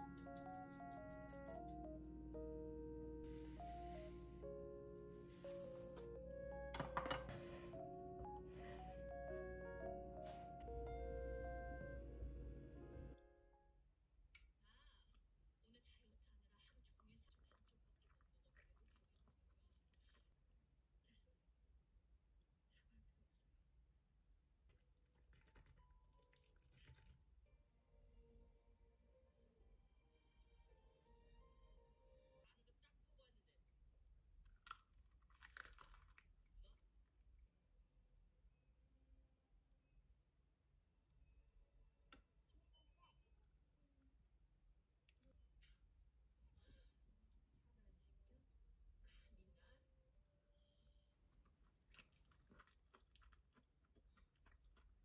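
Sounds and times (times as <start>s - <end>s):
chopsticks tapping ceramic bowl: 6.7s - 7.6s
small cup set down on tray: 6.7s - 7.7s
soft chewing: 16.5s - 20.6s, 24.6s - 27.3s, 34.0s - 37.6s, 50.2s - 55.0s.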